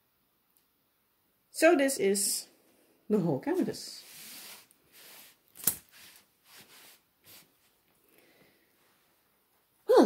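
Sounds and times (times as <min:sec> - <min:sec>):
soft handling rustling: 0:03.5 - 0:09.8.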